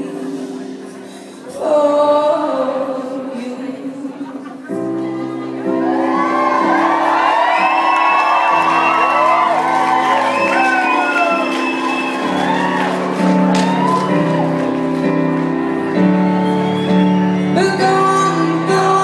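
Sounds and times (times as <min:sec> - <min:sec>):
piano chords: 0:00.0 - 0:19.0
audience whooping and shouting: 0:05.7 - 0:17.6
person singing: 0:17.3 - 0:19.0.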